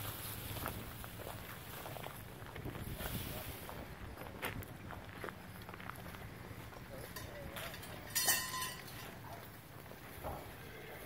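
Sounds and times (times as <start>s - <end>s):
hay rustling and scraping: 0.0s - 4.1s
faint voices: 1.9s - 11.0s.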